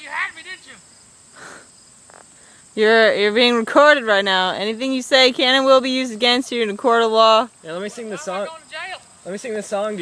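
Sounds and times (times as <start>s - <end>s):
field crickets droning: 0.0s - 10.0s.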